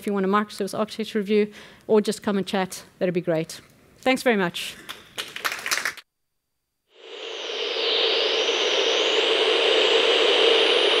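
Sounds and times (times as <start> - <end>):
audience clapping: 4.9 - 6.0
faint sliding whine: 6.9 - 11.0
rushing jet-like noise: 6.9 - 11.0.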